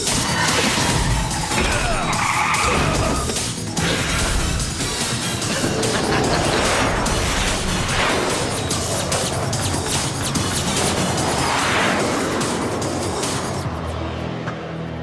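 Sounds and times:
cartoon battle music: 0.0s - 13.7s.

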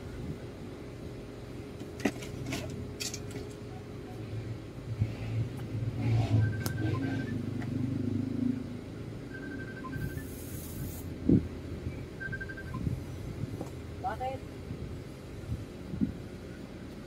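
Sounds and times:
low engine rumble: 0.0s - 17.0s
faint high beeps: 6.1s - 7.6s, 9.2s - 10.6s, 11.8s - 13.0s.

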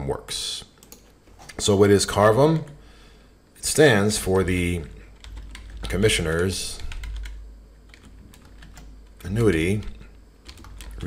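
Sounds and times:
typing on computer keyboard: 5.2s - 6.1s, 6.7s - 9.2s, 10.4s - 11.0s.

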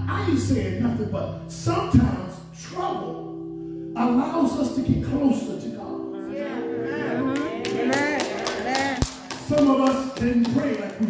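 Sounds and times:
man preaching over microphone: 0.0s - 3.3s, 4.0s - 8.4s, 9.3s - 11.0s
held musical chords: 0.0s - 10.4s.

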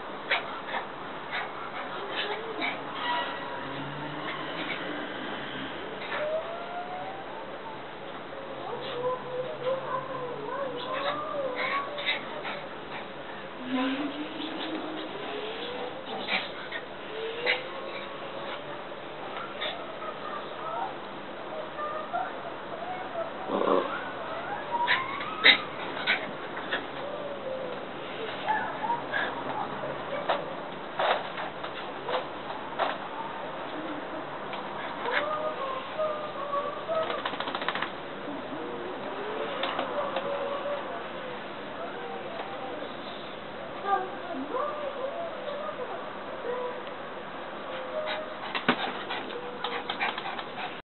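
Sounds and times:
dog whining: 0.3s - 4.9s, 6.0s - 7.9s, 8.6s - 13.1s, 13.7s - 31.2s, 34.8s - 37.6s, 47.6s - 50.8s
dove cooing: 23.4s - 30.2s, 33.2s - 41.4s.

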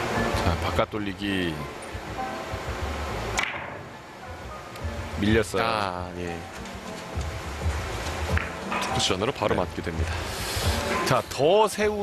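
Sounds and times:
cue striking ball click: 3.4s - 3.9s, 8.3s - 9.0s.

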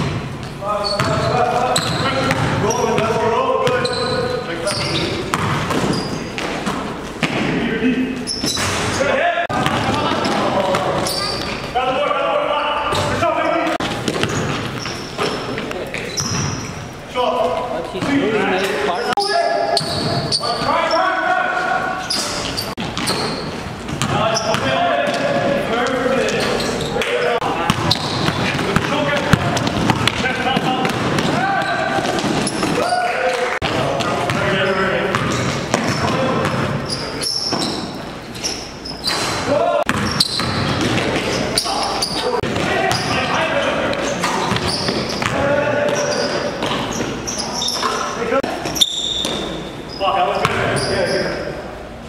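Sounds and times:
players shouting: 24.2s - 35.1s, 39.4s - 40.4s, 41.5s - 46.6s
basketball bouncing on hardwood: 27.7s - 32.8s.

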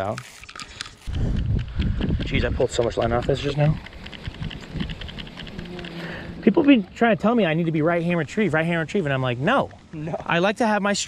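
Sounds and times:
fishing reel cranking ticks: 3.0s - 6.7s.

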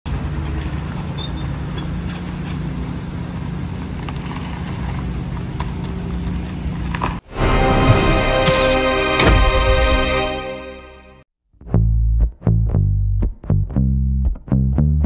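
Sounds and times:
theme music: 7.2s - 11.2s.

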